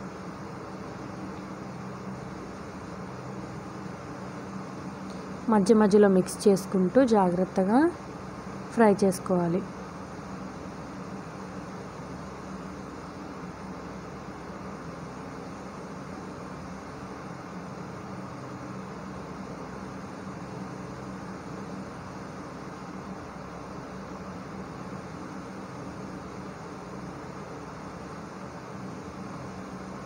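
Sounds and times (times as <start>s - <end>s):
faint low hum: 0.0s - 30.0s.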